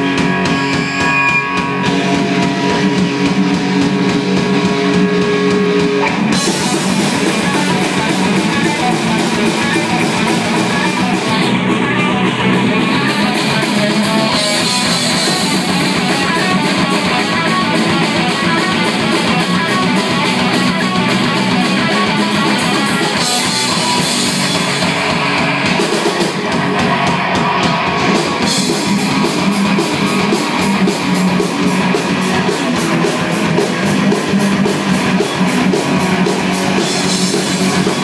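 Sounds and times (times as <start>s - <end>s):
rock band playing loud: 0.0s - 38.0s.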